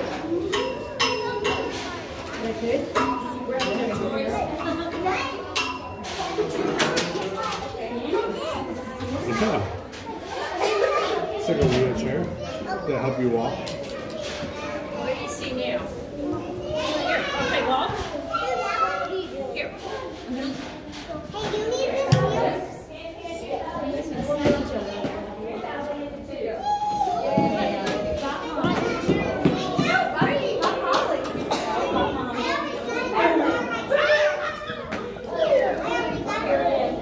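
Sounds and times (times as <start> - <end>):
children playing and talking: 0.0 - 37.0.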